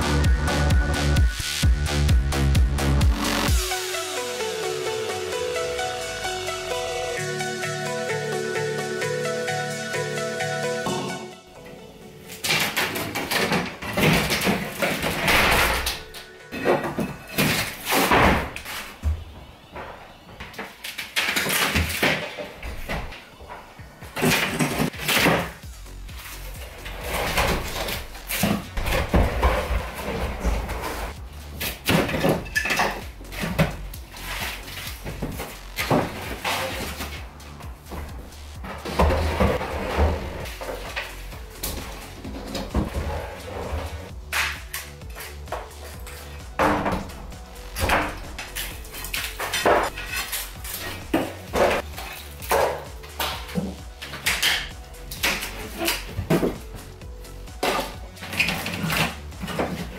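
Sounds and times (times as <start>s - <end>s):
background music: 0.0s - 59.9s
knocks cracks and clatter: 12.3s - 43.1s, 43.8s - 59.9s
plasterboard being pried and dropped: 12.4s - 16.0s, 31.6s - 33.8s.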